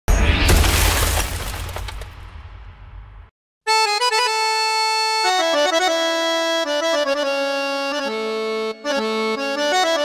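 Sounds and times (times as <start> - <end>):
sharp cracks: 0.4 - 3.3.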